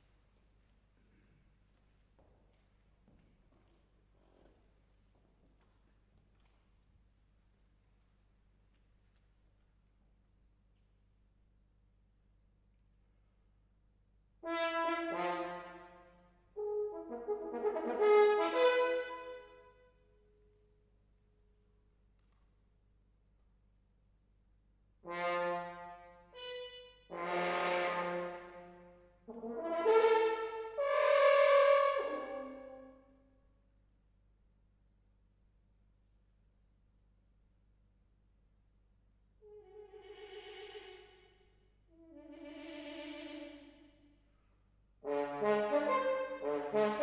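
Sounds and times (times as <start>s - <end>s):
french horn playing: 16.6s - 19.5s, 25.0s - 33.1s, 45.0s - 47.0s.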